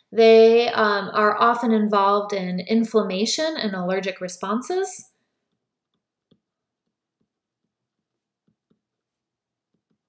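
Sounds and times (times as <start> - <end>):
stylus tapping on tablet screen: 5.4 - 10.0.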